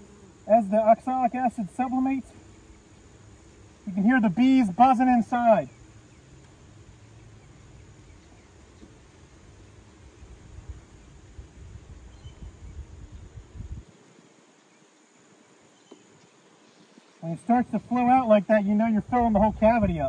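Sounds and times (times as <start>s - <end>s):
bees buzzing in hive: 0.0s - 16.6s
low gusty rumble: 1.4s - 13.9s, 17.6s - 20.0s.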